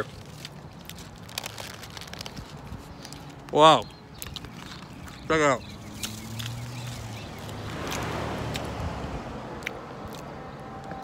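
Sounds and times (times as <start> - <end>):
vehicle passing: 4.5 - 11.0.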